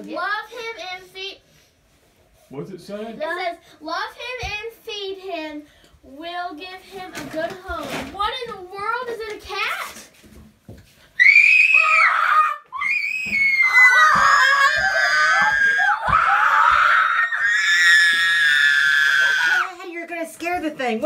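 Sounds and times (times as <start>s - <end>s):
people screaming with excitement: 11.2s - 19.7s.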